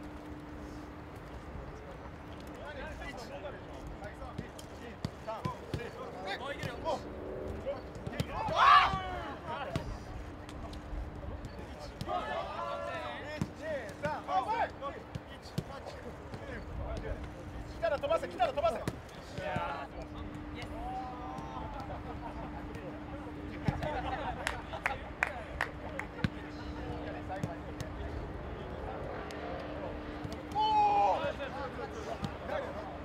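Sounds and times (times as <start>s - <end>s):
players calling out: 4.6s - 10.8s, 11.4s - 28.3s, 29.9s - 32.9s
loud shout: 8.3s - 9.5s, 30.5s - 31.5s.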